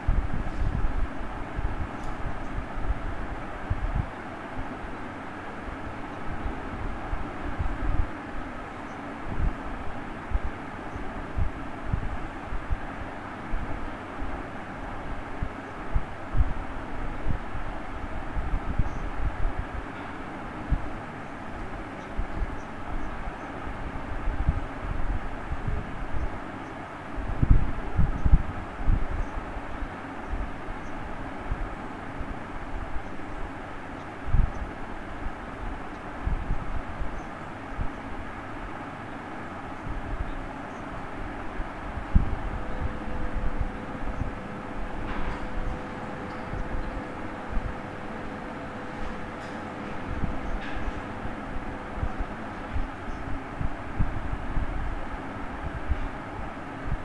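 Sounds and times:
steady hum: 0:00.0 - 0:57.0
steady rumbling: 0:37.7 - 0:57.0.

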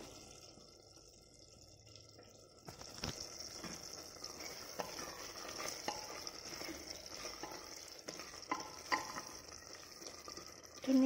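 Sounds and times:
food sizzling: 0:00.0 - 0:11.0
spoon scraping a metal pot: 0:04.2 - 0:10.5.

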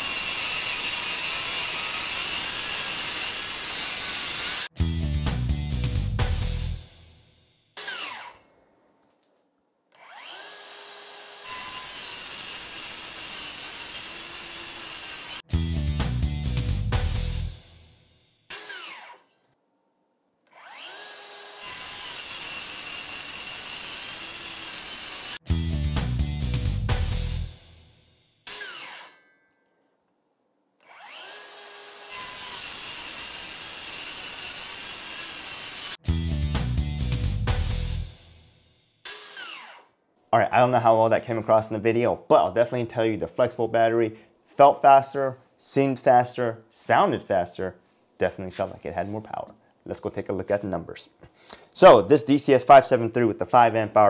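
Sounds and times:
circular saw blade winding down: 0:00.0 - 0:04.7, 0:07.8 - 0:08.4, 0:10.0 - 0:15.4, 0:17.2 - 0:19.3, 0:20.5 - 0:25.4, 0:28.4 - 0:29.2, 0:30.8 - 0:36.0, 0:39.0 - 0:39.9
saw cutting through boards: 0:00.0 - 0:04.7, 0:07.8 - 0:08.5, 0:09.9 - 0:15.5, 0:18.5 - 0:19.4, 0:20.5 - 0:25.4, 0:28.4 - 0:29.2, 0:30.8 - 0:36.1, 0:39.0 - 0:39.9.

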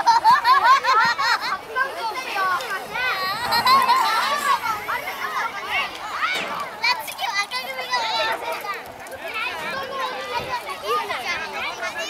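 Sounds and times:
children shouting: 0:00.0 - 0:08.8.

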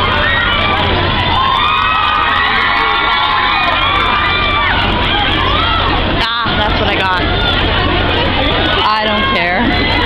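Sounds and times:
crowd screaming and shouting: 0:00.0 - 0:10.0.

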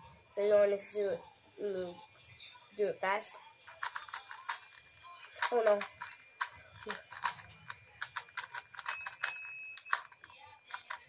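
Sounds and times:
plastic puzzle cube clicking: 0:03.7 - 0:11.0.

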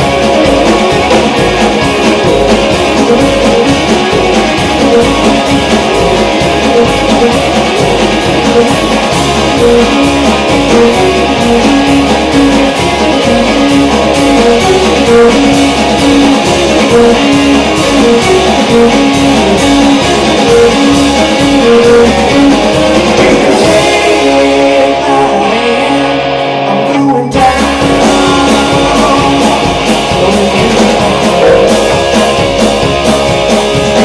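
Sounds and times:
violin holding long notes: 0:00.0 - 0:26.8
rock band playing: 0:00.0 - 0:34.0.

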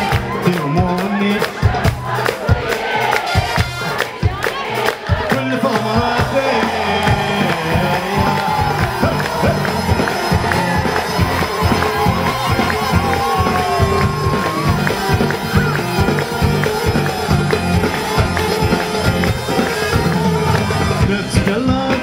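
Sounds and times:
crowd noise: 0:00.0 - 0:22.0
drum and bass beat: 0:00.0 - 0:22.0.

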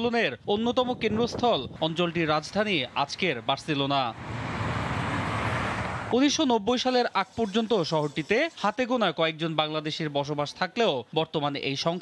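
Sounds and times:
city street traffic: 0:01.1 - 0:09.4.

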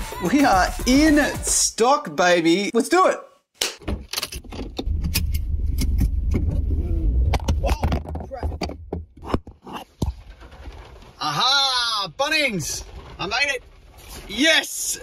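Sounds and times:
car engine starting: 0:04.4 - 0:07.7.

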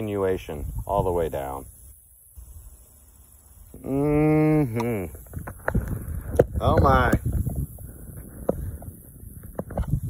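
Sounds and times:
man humming: 0:03.7 - 0:05.3.

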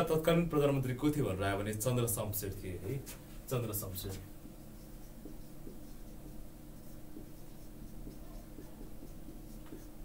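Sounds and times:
marker writing on whiteboard: 0:02.8 - 0:10.0.

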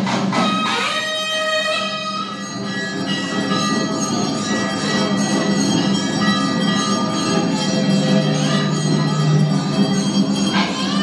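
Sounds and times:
music: 0:00.0 - 0:11.0
bells ringing: 0:00.6 - 0:11.0.

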